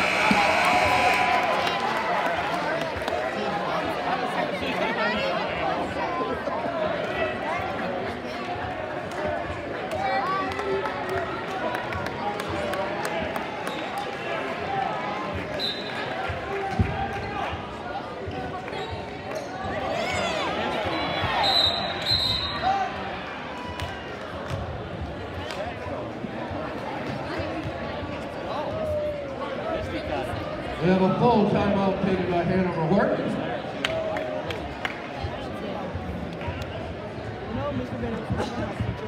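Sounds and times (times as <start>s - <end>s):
crowd talking and shouting: 0.0s - 39.0s.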